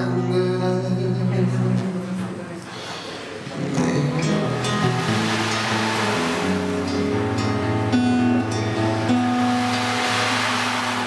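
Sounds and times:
acoustic guitar notes: 0:00.0 - 0:11.0
ocean drum beads rolling: 0:04.6 - 0:06.9, 0:09.0 - 0:11.0.

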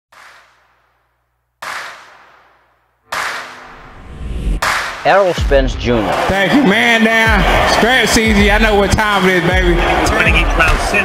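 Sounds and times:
sharp echoing cracks: 0:00.1 - 0:03.8, 0:04.6 - 0:05.4
steady sound: 0:03.0 - 0:05.9.

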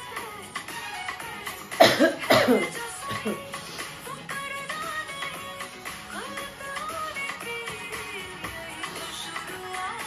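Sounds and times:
song playing: 0:00.0 - 0:10.0
woman coughing: 0:01.8 - 0:03.5.

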